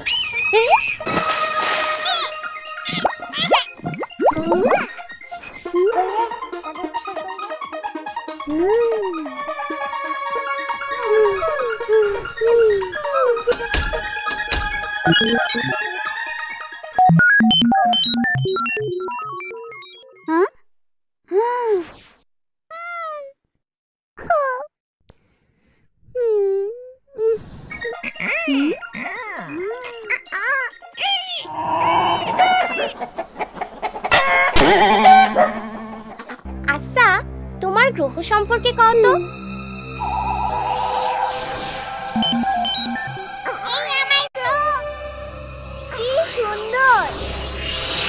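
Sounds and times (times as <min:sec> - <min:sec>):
cartoon background music: 0:00.0 - 0:20.5, 0:27.8 - 0:33.2, 0:34.2 - 0:48.0
bird clucking calls: 0:32.1 - 0:36.4.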